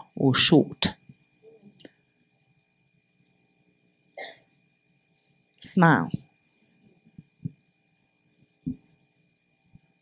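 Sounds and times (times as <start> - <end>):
faint steady hum: 0.0 - 10.0
soft low thumps: 7.2 - 7.6, 8.6 - 8.8.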